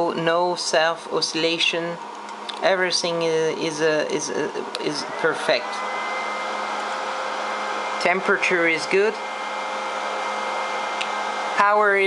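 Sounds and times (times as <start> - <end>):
cooling fan whirring: 0.0 - 12.0
steady hum: 0.0 - 12.0.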